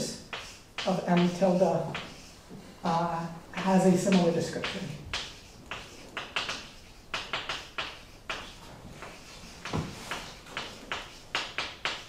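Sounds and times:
chalk writing on blackboard: 0:00.0 - 0:12.0.

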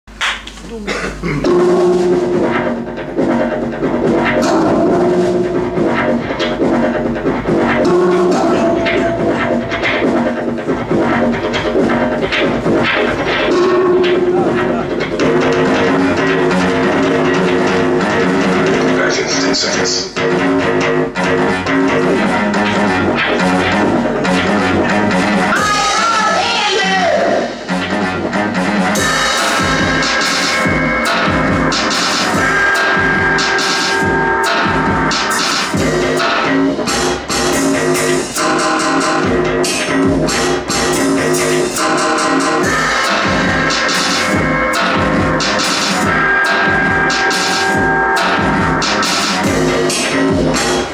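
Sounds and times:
drum and cymbal hits: 0:00.1 - 0:50.9
synthesizer sustained tones: 0:01.4 - 0:26.3, 0:27.4 - 0:50.9.

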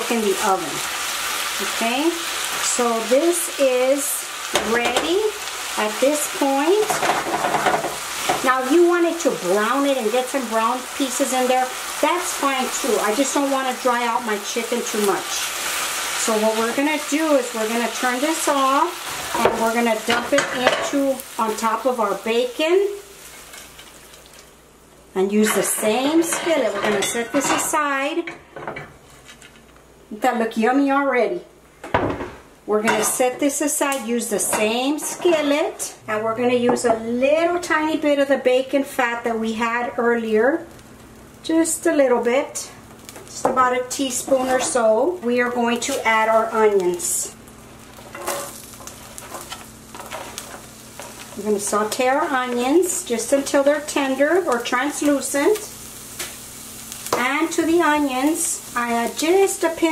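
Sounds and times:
chicken sizzling in a skillet: 0:00.0 - 0:28.2, 0:39.0 - 0:59.9.

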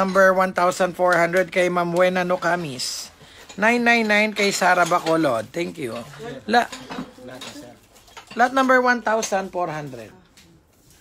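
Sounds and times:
ceramic bowls clinking: 0:00.0 - 0:09.8.

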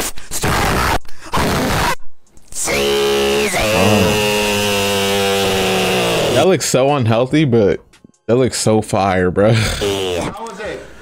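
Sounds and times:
buzzy pitched drone: 0:02.7 - 0:06.4.

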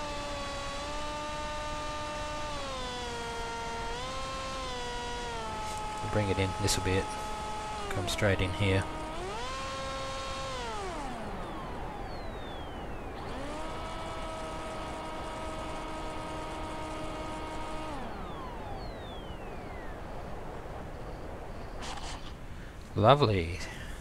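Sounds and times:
plane touching down in grass: 0:00.0 - 0:12.3
electric motor whine: 0:00.0 - 0:22.3
wind rush: 0:19.5 - 0:22.6.

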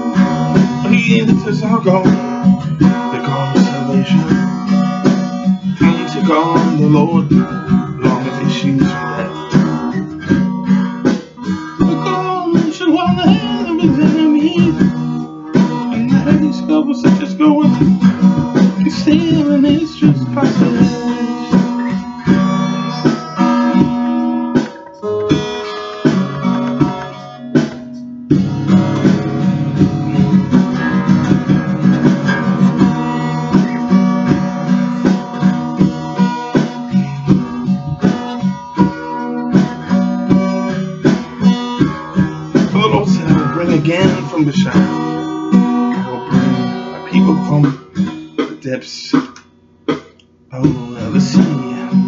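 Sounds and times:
man singing: 0:00.0 - 0:10.0, 0:11.8 - 0:22.7, 0:42.6 - 0:49.4, 0:50.5 - 0:52.0
guitar strumming: 0:00.0 - 0:52.0.

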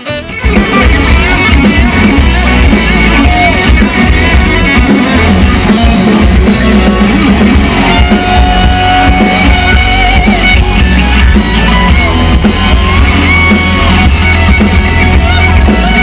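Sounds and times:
bass guitar: 0:00.0 - 0:16.0
drum kit: 0:00.0 - 0:16.0
electric guitars: 0:00.0 - 0:16.0.

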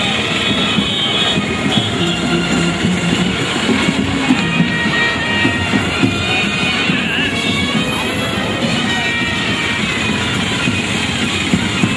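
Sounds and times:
engine-like rumble: 0:00.0 - 0:08.4
street band music: 0:00.0 - 0:11.9.

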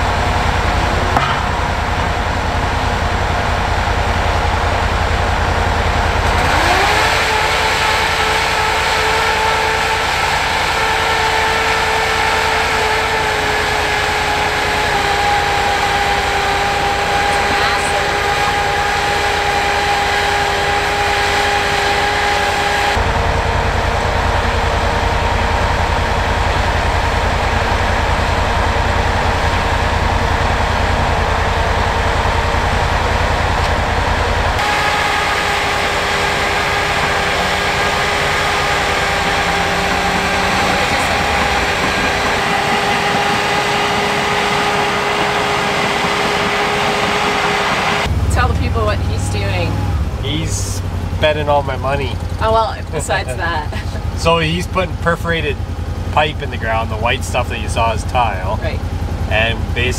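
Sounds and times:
plow engine rumbling: 0:00.0 - 0:59.9.

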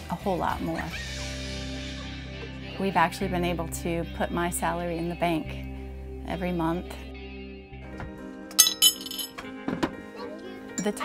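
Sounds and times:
background music: 0:00.0 - 0:11.0
tableware clinking: 0:08.5 - 0:09.5, 0:10.8 - 0:11.0
soft knocks: 0:09.4 - 0:10.1.

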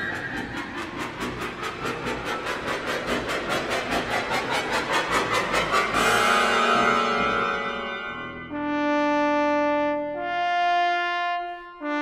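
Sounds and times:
sustained orchestral music: 0:05.8 - 0:12.0.

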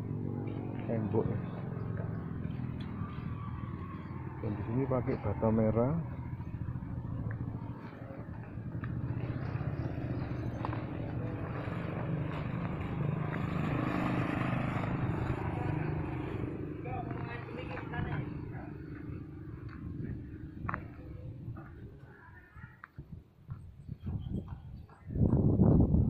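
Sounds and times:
vehicle passing: 0:00.0 - 0:22.0
road traffic: 0:00.0 - 0:25.9.

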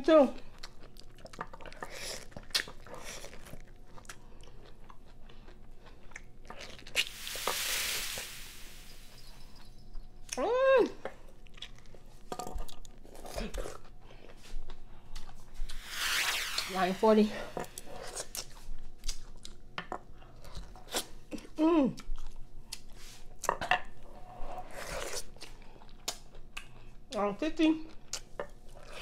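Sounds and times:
wet crunchy chewing: 0:00.5 - 0:07.1
long breathy hiss: 0:07.0 - 0:09.6.

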